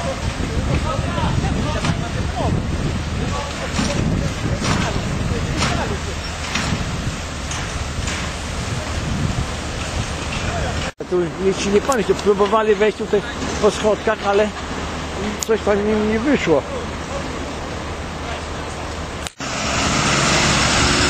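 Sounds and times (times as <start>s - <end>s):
diesel engines rumbling: 0.0s - 21.0s.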